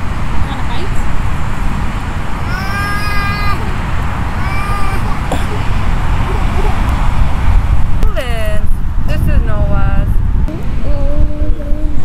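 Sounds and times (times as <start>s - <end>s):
wind on microphone: 0.0s - 12.0s
young child squealing: 2.5s - 3.7s, 4.4s - 5.2s.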